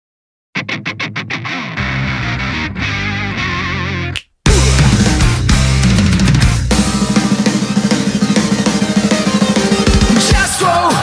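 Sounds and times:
distorted electric guitar stabs: 0.6 - 11.0
sustained distorted guitar: 0.6 - 11.0
wavering guitar lead line: 0.6 - 11.0
steady bass: 1.8 - 11.0.

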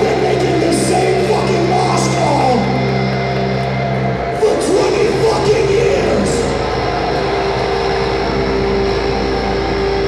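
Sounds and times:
distorted electric guitar and bass: 0.0 - 10.0.

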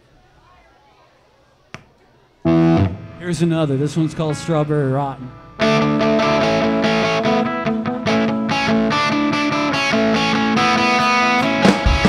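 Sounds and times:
low crowd chatter: 0.0 - 7.8
electric guitar chord: 2.4 - 12.0.

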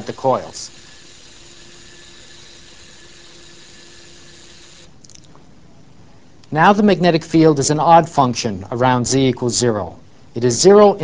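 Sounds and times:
small electric motor humming: 0.0 - 5.0.

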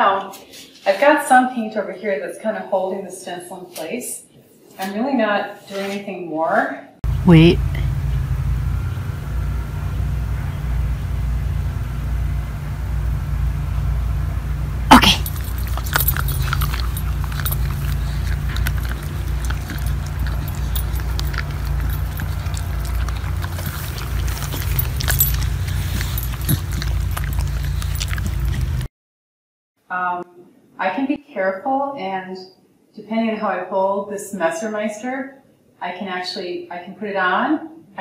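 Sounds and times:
dog barking: 14.9 - 28.8
dogs chewing treats: 14.9 - 28.9.

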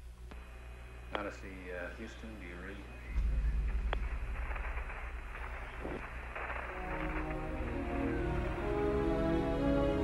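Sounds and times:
radio static hiss: 0.0 - 9.2
low rumble: 3.1 - 8.8
orchestral film music: 6.7 - 10.0.

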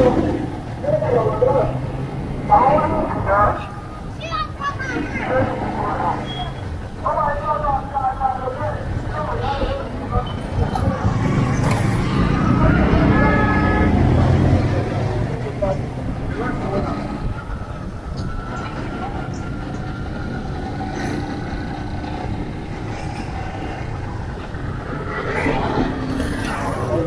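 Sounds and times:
street traffic: 0.0 - 27.0
street voices: 0.0 - 27.0.

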